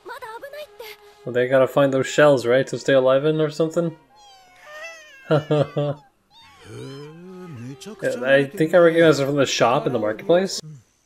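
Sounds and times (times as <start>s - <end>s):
high gliding cartoon squeaks: 4.0s - 8.2s
low wavering cartoon call: 5.9s - 8.0s.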